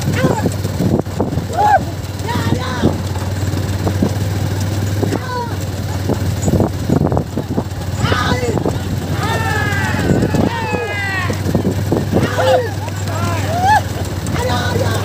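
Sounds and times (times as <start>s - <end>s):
men shouting and calling: 0.0s - 6.3s, 7.1s - 15.0s.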